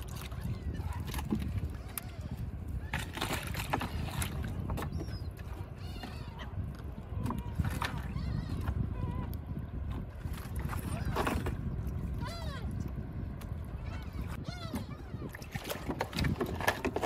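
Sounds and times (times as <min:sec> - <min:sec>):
steady low rumble: 0:00.0 - 0:16.3
gulls and seabirds calling: 0:00.0 - 0:17.0.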